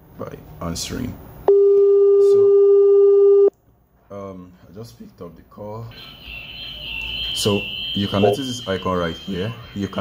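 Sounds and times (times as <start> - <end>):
steady ringing tone: 6.0 - 10.0.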